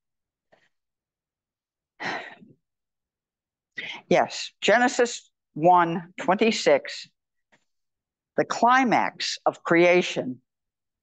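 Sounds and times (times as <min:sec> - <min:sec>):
person breathing: 0:03.8 - 0:04.1.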